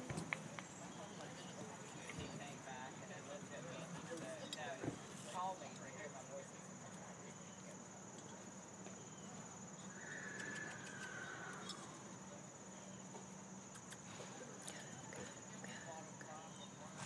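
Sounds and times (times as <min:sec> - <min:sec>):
insects droning: 0:00.0 - 0:17.0.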